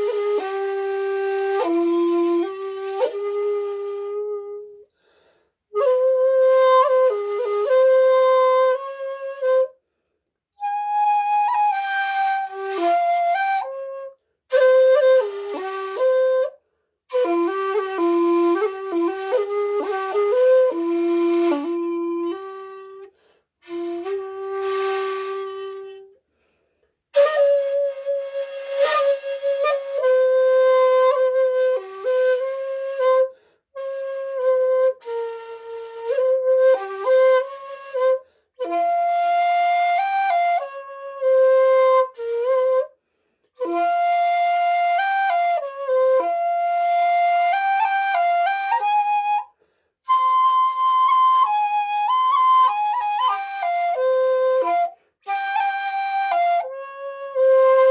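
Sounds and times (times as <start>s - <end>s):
shakuhachi flute playing: 0.0s - 4.9s, 5.7s - 9.8s, 10.5s - 26.2s, 27.1s - 57.9s.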